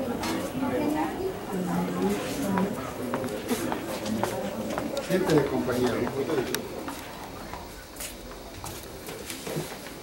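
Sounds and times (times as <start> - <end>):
indistinct low voices: 0.0 - 10.0.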